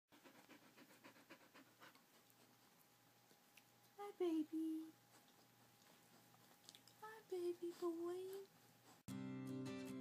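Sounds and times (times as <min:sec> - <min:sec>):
dog panting: 0:00.1 - 0:03.5, 0:04.8 - 0:09.1.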